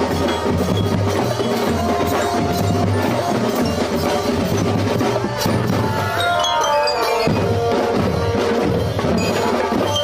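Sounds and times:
bass and snare drums: 0:00.0 - 0:06.2, 0:07.2 - 0:10.0
high melody line: 0:00.0 - 0:10.0.

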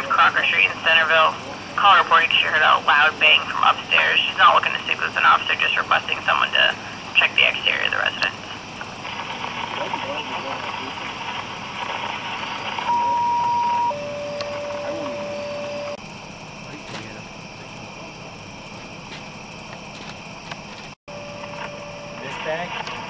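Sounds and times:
radio scanner hiss: 0:00.0 - 0:16.0, 0:21.4 - 0:23.0
two-tone paging alert: 0:12.9 - 0:16.0.

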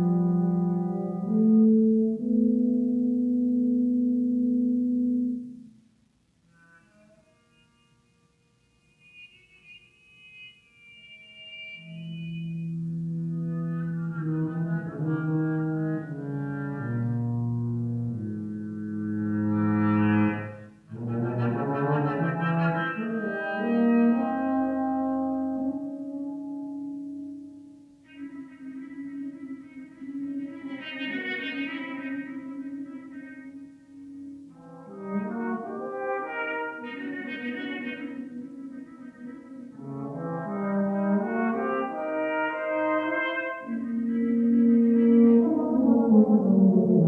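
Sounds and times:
brass ensemble sustained notes: 0:00.0 - 0:05.8, 0:08.6 - 0:47.0
french horn: 0:00.0 - 0:05.8, 0:11.0 - 0:47.0.

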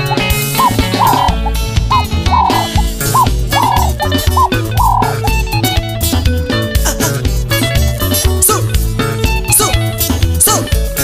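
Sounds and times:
bass guitar: 0:00.0 - 0:11.0
drums: 0:00.0 - 0:11.0.

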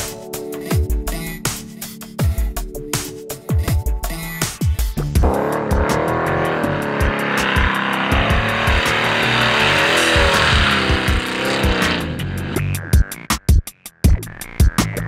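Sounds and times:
electronic music with steady beat: 0:00.0 - 0:15.0
car engine revving: 0:05.2 - 0:12.7.

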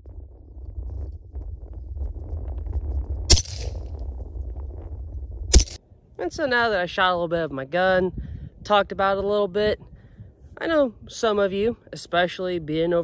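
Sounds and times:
gunshots with echo: 0:03.3 - 0:03.8, 0:05.5 - 0:05.8.

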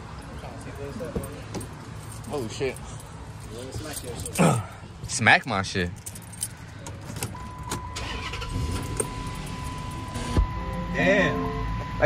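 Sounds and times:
car engine starting: 0:06.0 - 0:12.0
steady high tone: 0:08.0 - 0:12.0.

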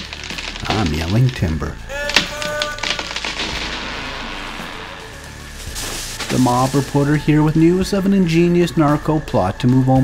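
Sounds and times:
sharp cracks: 0:00.0 - 0:06.8
crash and rumble: 0:02.7 - 0:07.0.

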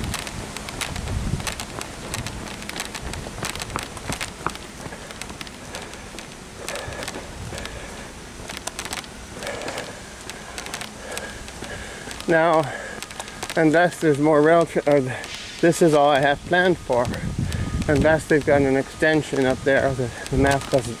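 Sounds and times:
wind hiss on microphone: 0:00.0 - 0:05.3, 0:06.7 - 0:08.3, 0:09.0 - 0:21.0
camera knocking and rustling: 0:00.0 - 0:07.8, 0:08.4 - 0:12.3
sharp irregular clicks: 0:00.0 - 0:07.8, 0:08.4 - 0:15.0
footfalls on pavement: 0:00.0 - 0:21.0.

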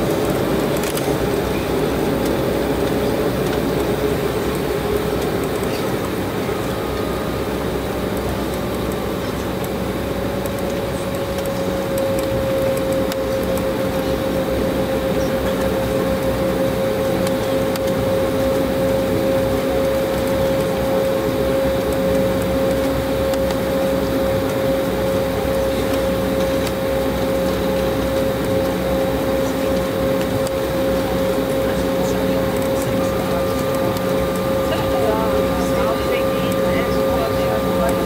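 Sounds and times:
air-conditioning airflow: 0:00.0 - 0:38.0
engine rumble in aircraft cabin: 0:00.0 - 0:38.0
jet engine whine: 0:00.0 - 0:38.0.

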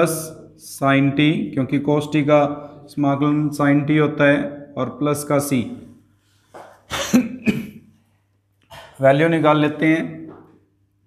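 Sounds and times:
man clearing his throat: 0:06.8 - 0:08.0, 0:08.7 - 0:09.0.

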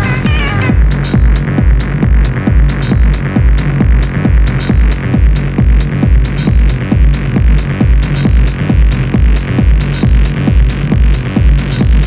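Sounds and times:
open hi-hats: 0:00.0 - 0:12.0
sustained bass line: 0:00.0 - 0:12.0
techno kick drum: 0:00.0 - 0:12.0.

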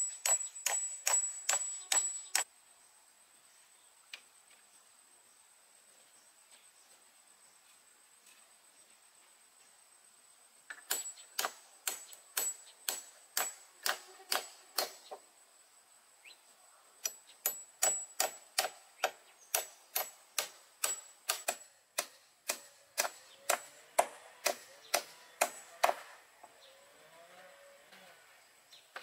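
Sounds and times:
hammer driving nail into wood: 0:10.8 - 0:15.2, 0:17.0 - 0:26.1.

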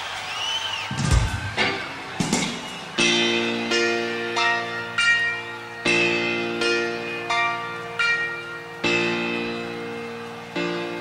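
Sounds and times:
piano chords: 0:00.9 - 0:11.0.

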